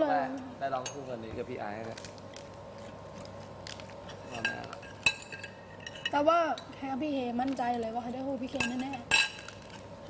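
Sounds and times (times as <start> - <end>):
utensil clinking against dish: 4.3 - 6.7, 8.5 - 9.8
woman speaking: 6.1 - 9.1.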